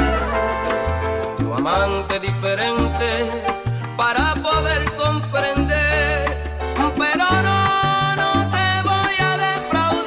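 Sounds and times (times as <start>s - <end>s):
instrumental salsa music: 0.0s - 10.0s.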